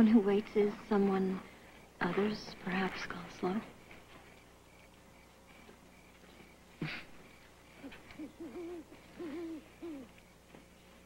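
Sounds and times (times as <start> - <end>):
owl hooting: 1.6 - 10.4.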